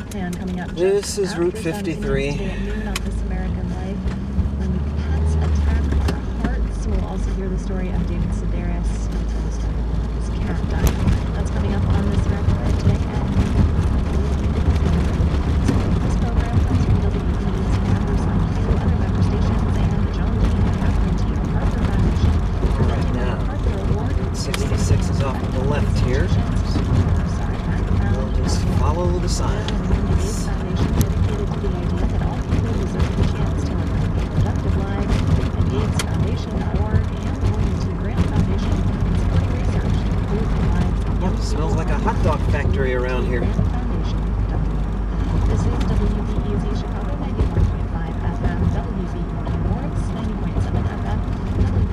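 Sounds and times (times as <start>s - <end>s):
car engine and road noise: 0.0s - 51.9s
talk from car radio: 0.0s - 51.9s.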